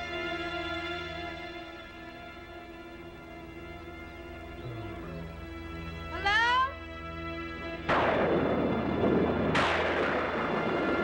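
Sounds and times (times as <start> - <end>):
eerie music drone: 0.0 - 11.0.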